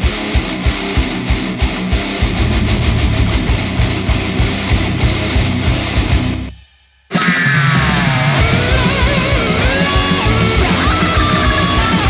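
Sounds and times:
distorted electric guitars: 0:00.0 - 0:12.0
fast drum beat: 0:02.2 - 0:12.0.

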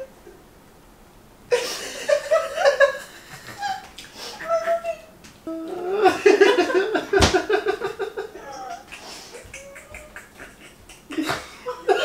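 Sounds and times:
woman laughing: 0:01.5 - 0:12.0.

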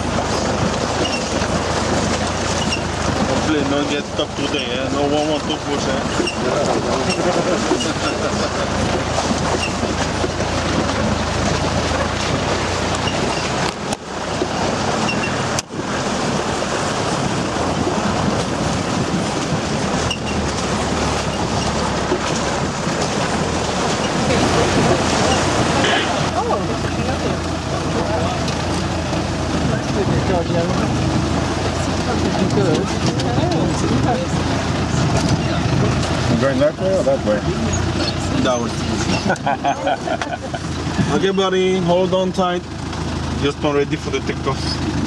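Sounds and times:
vehicle engine droning: 0:00.0 - 0:45.0.

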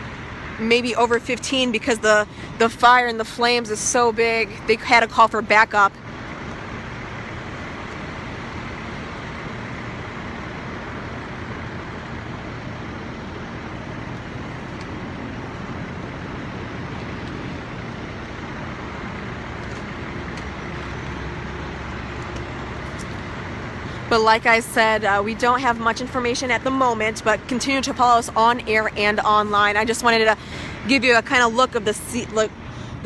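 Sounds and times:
fire truck engines and pumps: 0:00.0 - 0:33.0.

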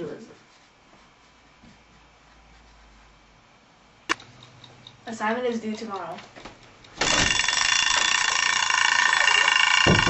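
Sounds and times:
electric bell ringing: 0:07.0 - 0:10.0.

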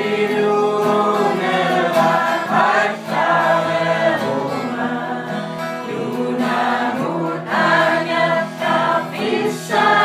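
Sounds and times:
group singing held notes: 0:00.0 - 0:10.0.

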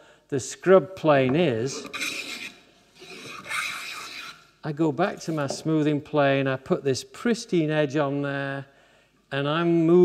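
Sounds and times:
wooden plane rasping on board: 0:01.3 - 0:04.4.

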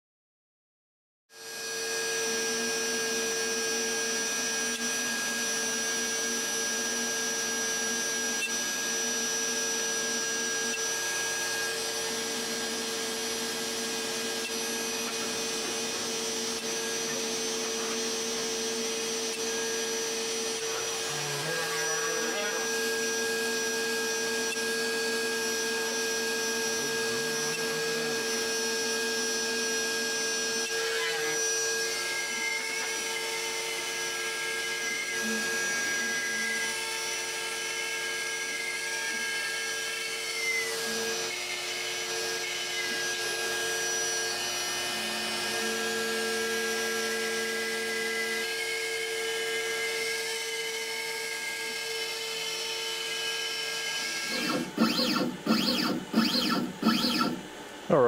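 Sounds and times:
router whining while milling wood: 0:01.3 - 0:58.0.

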